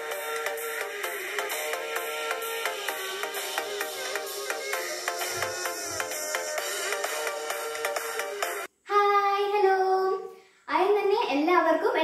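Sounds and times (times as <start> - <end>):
background music: 0.0 - 8.7.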